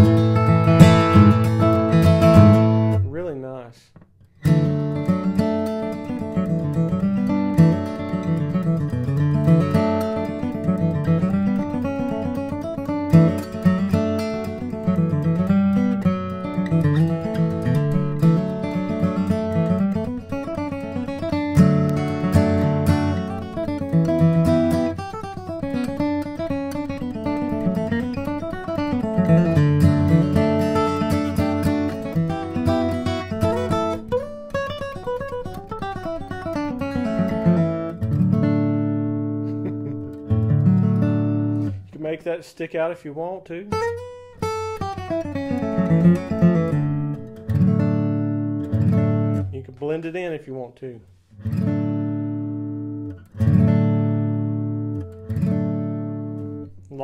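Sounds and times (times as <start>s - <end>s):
acoustic guitar strumming and bass runs: 0.0s - 50.4s, 51.1s - 56.8s.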